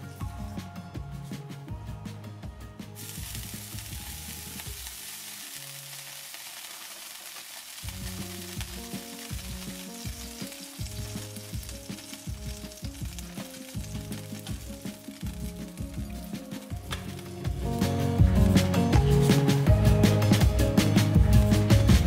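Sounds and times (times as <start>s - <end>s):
background music: 0.0s - 6.7s, 7.7s - 22.0s
skillet sizzling and spitting: 3.0s - 19.7s.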